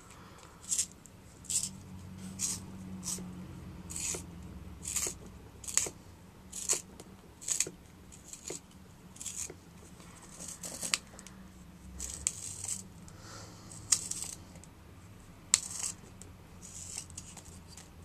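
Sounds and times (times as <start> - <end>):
pencil sharpener scraping wood: 0.6 - 3.3, 3.9 - 6.8, 7.4 - 8.6, 9.2 - 11.1, 12.0 - 12.8, 15.5 - 17.9.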